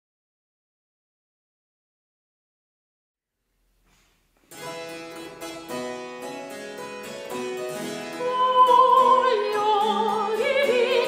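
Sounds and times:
solo harpsichord: 4.6 - 10.4.

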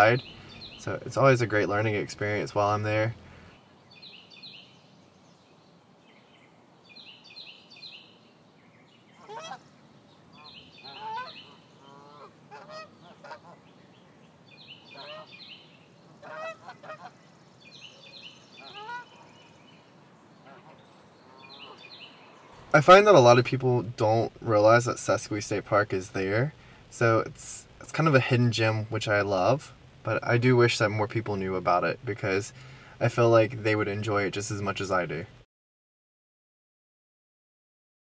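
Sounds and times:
songbird repeating high phrase: 0.0 - 3.2, 10.4 - 12.8
geese honking: 9.2 - 9.7, 10.4 - 13.8, 14.6 - 17.2, 17.8 - 19.5, 20.4 - 22.0.

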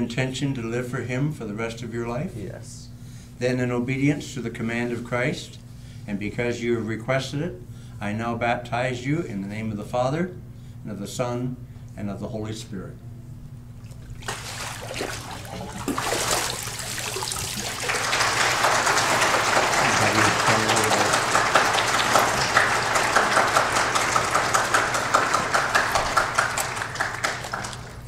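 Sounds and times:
water splashing: 13.8 - 19.9
congregation applauding: 14.4 - 28.0.

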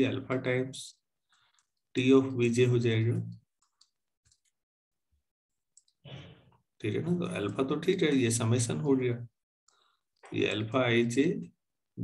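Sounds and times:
man speaking: 6.8 - 9.4.

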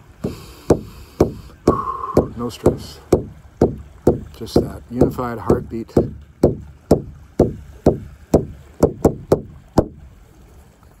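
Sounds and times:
frame drum beating: 0.2 - 10.0.

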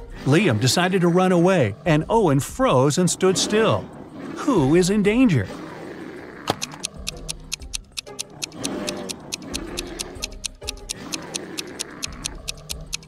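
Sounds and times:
background music: 0.0 - 13.0
stopwatch ticking: 6.5 - 13.0.

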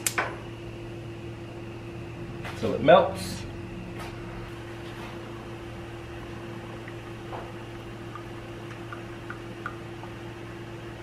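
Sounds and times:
stove igniter clicking: 0.0 - 0.3
burner hum with faint hiss: 0.0 - 11.0.

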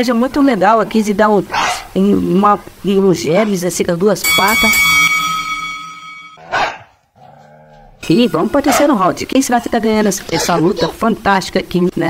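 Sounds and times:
dog barking: 1.5 - 1.9, 6.4 - 7.0, 8.6 - 9.0
ringing bell: 4.2 - 6.4.

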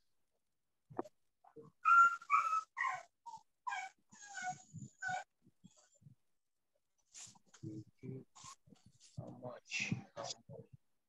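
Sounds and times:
small dog whining: 1.8 - 5.3.

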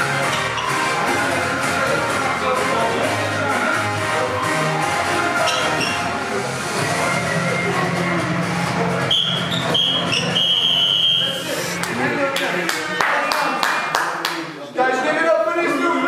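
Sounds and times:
background music: 0.0 - 13.5.

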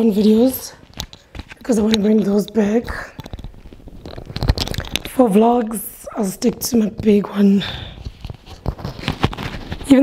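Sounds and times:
fabric rustling against microphone: 0.0 - 10.0.

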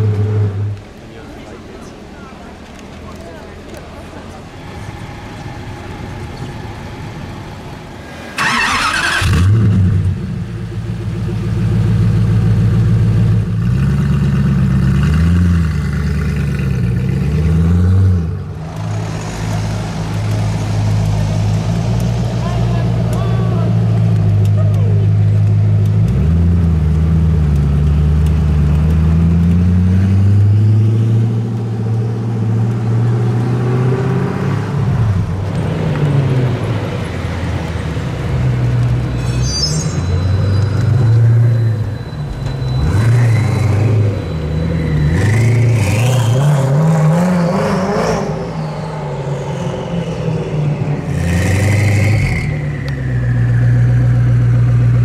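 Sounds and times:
car engine starting and revving: 8.0 - 39.1, 40.5 - 55.0.

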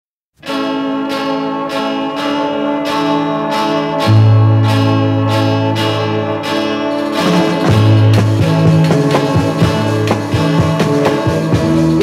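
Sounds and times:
pop song instrumental: 0.4 - 12.0
deep bass note: 7.1 - 12.0.

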